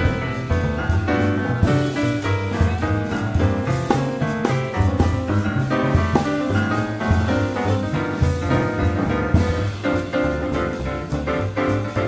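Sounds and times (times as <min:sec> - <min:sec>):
piano chords: 0:00.0 - 0:12.0
plucked double bass: 0:00.0 - 0:12.0.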